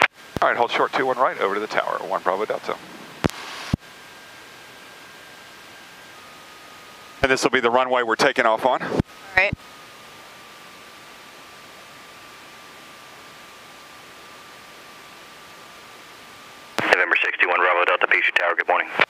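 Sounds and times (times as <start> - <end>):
faint high whine: 0.0 - 19.0
steady headset hiss: 0.0 - 19.0
speech over radio: 16.8 - 19.0.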